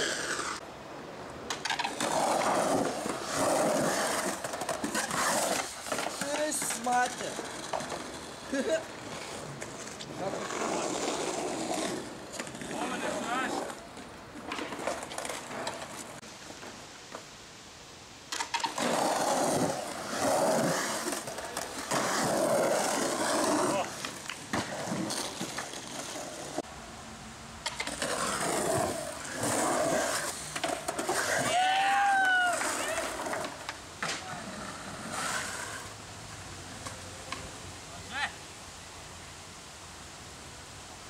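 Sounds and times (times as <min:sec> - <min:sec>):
skateboard wheels rolling on concrete: 0:00.0 - 0:41.0.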